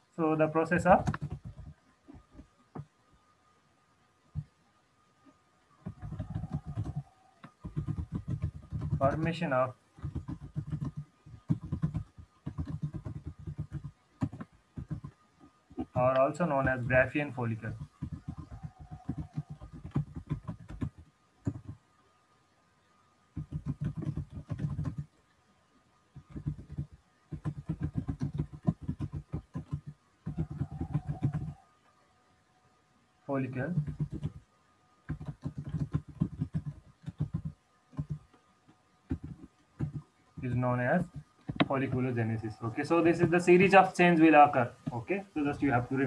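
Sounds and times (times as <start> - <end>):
computer keyboard typing: 0.8 - 2.5, 5.8 - 9.4, 10.0 - 21.8, 23.4 - 25.2, 26.1 - 31.6, 33.5 - 34.4, 35.1 - 38.3, 39.1 - 42.1.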